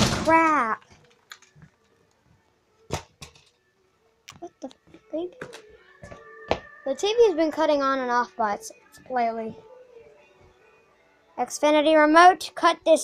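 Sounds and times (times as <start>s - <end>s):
television tones: 4.3s - 11.4s.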